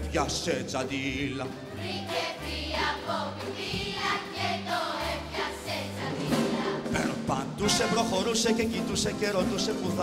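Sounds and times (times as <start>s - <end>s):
children's choir singing: 1.4s - 7.3s
orchestra playing: 4.2s - 10.0s.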